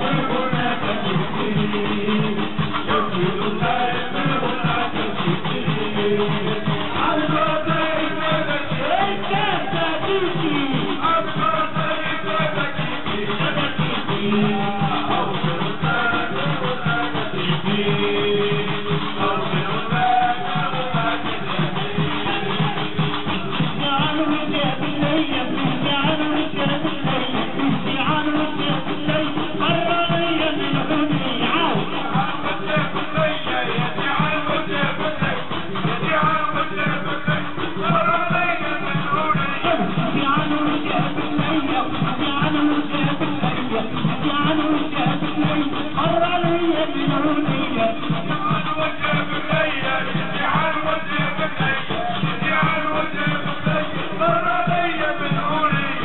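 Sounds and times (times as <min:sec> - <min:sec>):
percussion steady beat: 0:00.0 - 0:56.0
person singing: 0:00.0 - 0:56.0.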